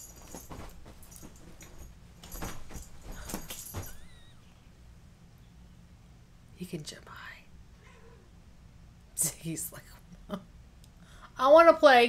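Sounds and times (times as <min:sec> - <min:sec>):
cat toy rattling and swishing: 0:00.0 - 0:04.2.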